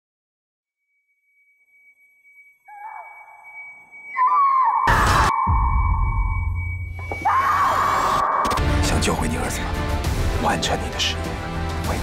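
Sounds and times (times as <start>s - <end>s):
thin steady high tone: 0.8s - 7.3s
dramatic trailer music: 8.0s - 12.0s.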